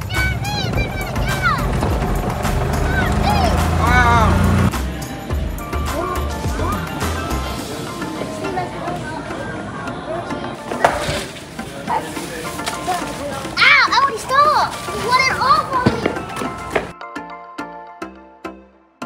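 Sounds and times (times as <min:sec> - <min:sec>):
children's voices: 0:00.0 - 0:04.6, 0:06.2 - 0:16.7
busy shop noise: 0:00.0 - 0:17.0
background music: 0:00.0 - 0:19.0.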